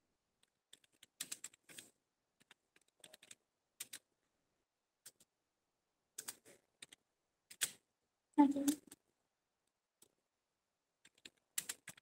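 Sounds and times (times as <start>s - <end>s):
keyboard typing clicks: 2.4s - 4.0s, 11.0s - 12.0s.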